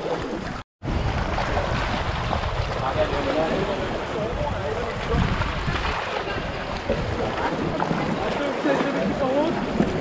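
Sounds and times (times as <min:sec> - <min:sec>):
sea water sloshing on rocks: 0:00.0 - 0:10.0
wind rumbling on microphone: 0:00.0 - 0:10.0
people talking: 0:02.8 - 0:10.0.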